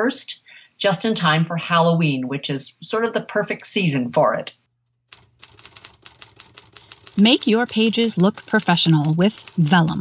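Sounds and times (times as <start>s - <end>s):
typewriter keys clacking: 5.1s - 10.0s.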